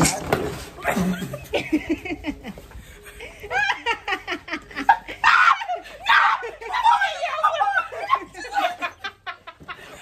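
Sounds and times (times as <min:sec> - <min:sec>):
women laughing: 0:00.8 - 0:10.0
women shrieking: 0:05.0 - 0:09.2.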